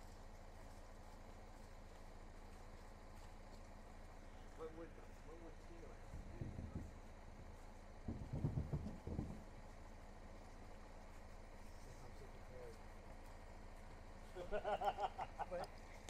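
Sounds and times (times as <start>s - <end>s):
low rumble: 0.0s - 14.6s
distant voices: 0.0s - 16.0s
low knocks: 6.1s - 7.2s, 8.0s - 9.7s.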